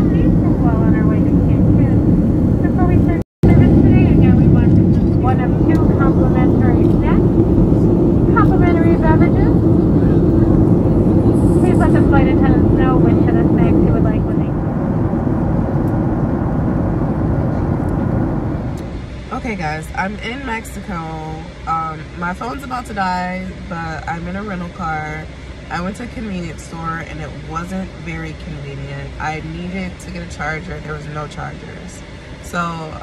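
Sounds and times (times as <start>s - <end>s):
indistinct voices: 0.0s - 19.8s
jet engine rumble and airflow: 0.0s - 33.0s.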